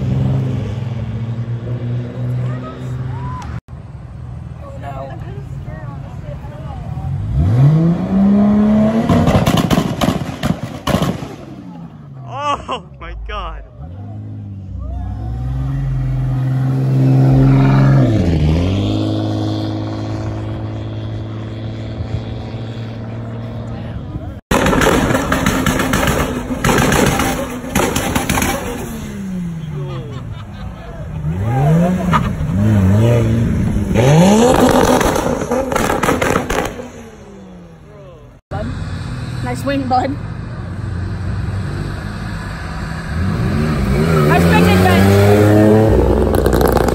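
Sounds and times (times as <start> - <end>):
car engine pulling away: 13.8 - 30.0, 30.8 - 46.9
sports car engine revving with crackle: 31.4 - 37.4, 43.0 - 46.9.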